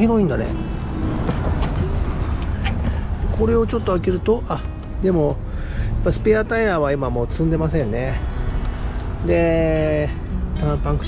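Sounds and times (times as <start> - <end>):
low rumbling noise: 0.0 - 5.2.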